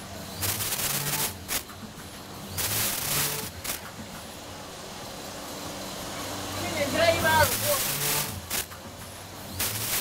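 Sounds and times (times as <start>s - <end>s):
packaging machine hum and hiss: 0.0s - 10.0s
person speaking: 6.6s - 8.0s.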